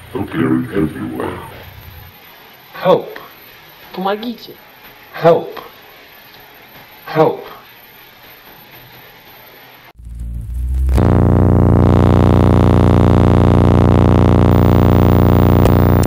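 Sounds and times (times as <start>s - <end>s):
tape hiss: 0.0s - 16.0s
low buzzing synthesizer drone: 10.0s - 16.0s.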